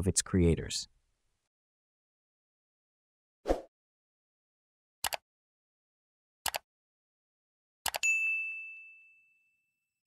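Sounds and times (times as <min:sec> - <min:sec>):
bright bell ding: 0:08.0 - 0:09.9.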